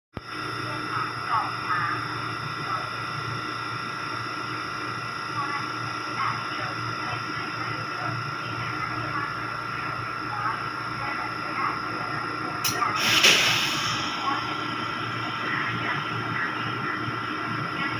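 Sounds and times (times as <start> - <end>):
train equipment hum with high whines: 0.2 - 17.9
faint voices: 5.4 - 17.9.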